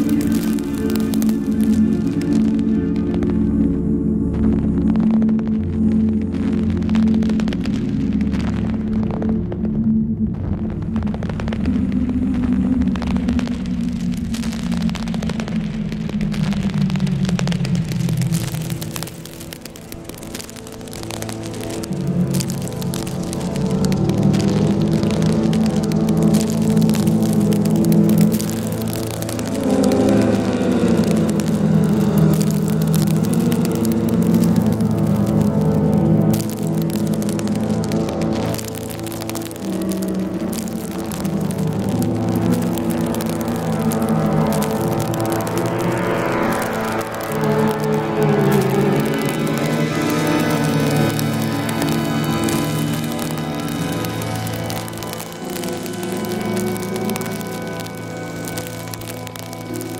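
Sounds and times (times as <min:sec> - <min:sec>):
low drone: 0:00.0 - 0:59.9.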